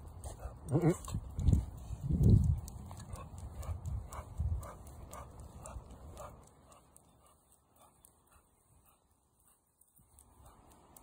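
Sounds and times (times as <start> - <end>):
dog low vocal sounds: 0.2 - 1.8.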